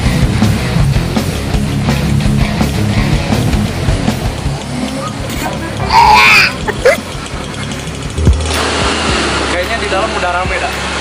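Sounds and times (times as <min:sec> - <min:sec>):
small motorcycle engine idling: 0:01.2 - 0:11.0
voices: 0:04.5 - 0:08.2.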